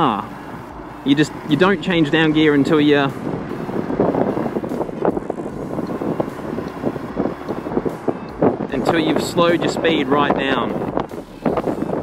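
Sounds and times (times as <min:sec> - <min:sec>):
wind rushing over microphone: 0:00.0 - 0:12.0.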